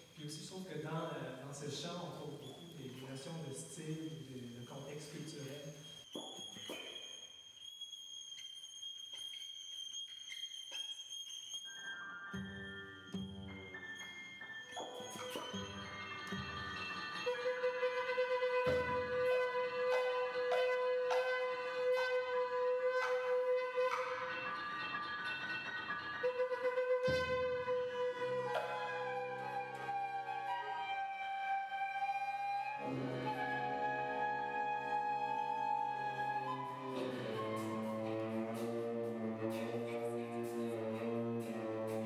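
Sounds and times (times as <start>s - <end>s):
chamber ensemble playing slow music: 12.0s - 42.0s.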